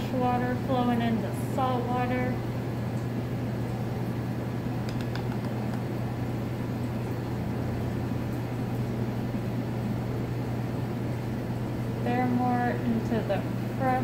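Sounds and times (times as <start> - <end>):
aquarium filter pump humming: 0.0 - 14.0.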